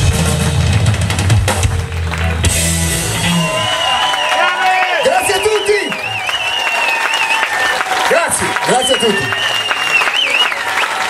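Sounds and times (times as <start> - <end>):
electric blues band playing: 0.0 - 4.1
crowd cheering: 0.4 - 11.0.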